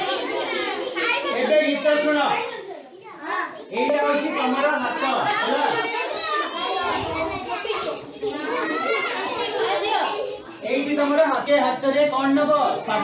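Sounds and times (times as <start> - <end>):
children talking and calling out: 0.0 - 13.0.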